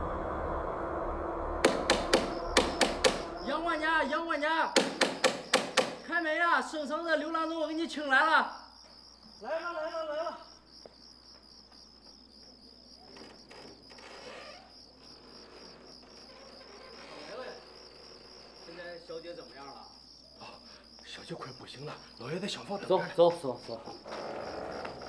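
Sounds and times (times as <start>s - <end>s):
crickets chirping: 0.0s - 25.0s.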